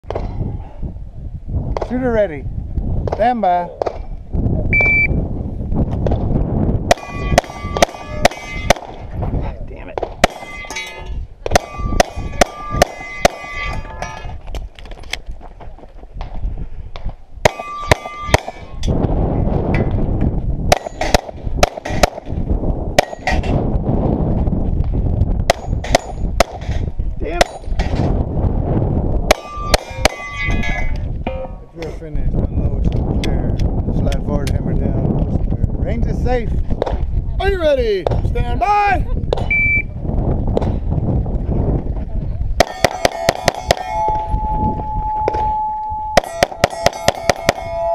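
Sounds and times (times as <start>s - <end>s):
shot timer beep: 4.8s - 5.2s, 39.5s - 39.9s
steel plate clanging: 6.9s - 8.9s, 10.2s - 14.4s, 17.5s - 19.0s, 23.0s - 23.6s, 29.3s - 31.8s, 42.6s - 44.5s, 45.2s - 47.9s
pistol shots: 17.4s - 18.7s, 20.7s - 22.3s, 42.6s - 43.8s.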